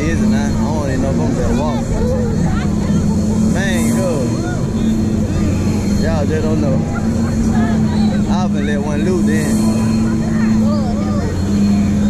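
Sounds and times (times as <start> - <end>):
ride machinery humming: 0.0 - 12.0.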